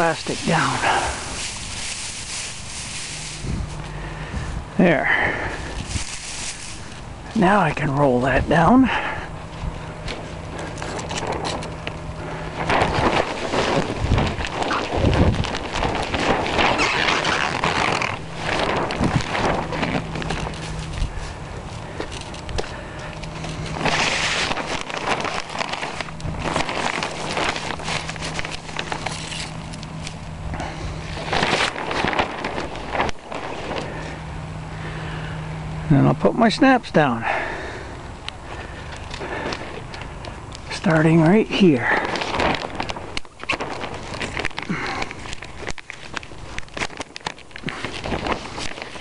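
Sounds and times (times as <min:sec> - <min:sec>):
plastic sheeting rustling: 0:00.0 - 0:37.9, 0:38.5 - 0:49.0.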